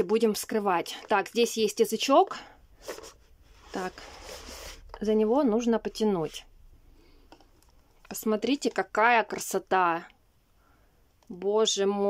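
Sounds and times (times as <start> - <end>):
box lid sliding off: 2.8 - 5.1.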